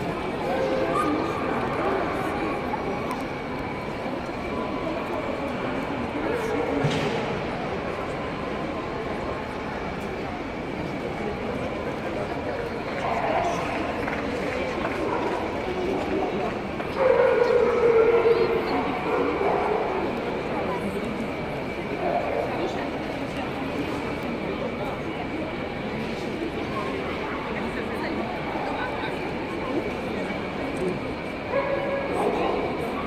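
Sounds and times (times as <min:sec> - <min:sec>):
crowd chatter: 0:00.0 - 0:33.0.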